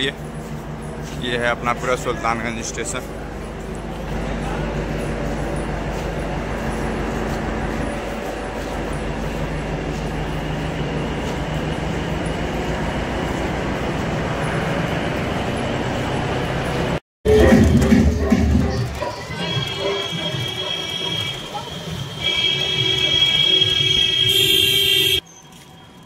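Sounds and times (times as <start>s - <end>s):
train hum and rumble: 0.0s - 24.6s.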